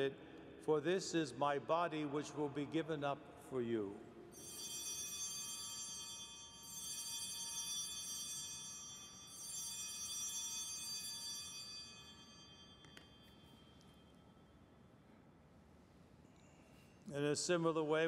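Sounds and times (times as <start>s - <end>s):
altar bells jangling: 4.4s - 14.2s.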